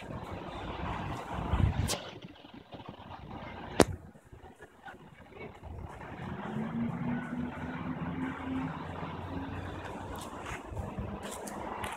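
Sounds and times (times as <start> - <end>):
engine humming: 0.0 - 11.9.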